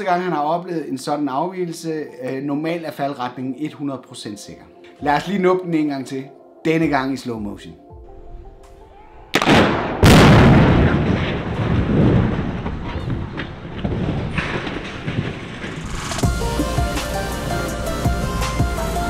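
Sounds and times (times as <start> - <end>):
music: 0.0 - 10.0, 16.0 - 19.0
rumble of collapse: 9.4 - 17.0
explosive blasts: 9.4 - 17.7.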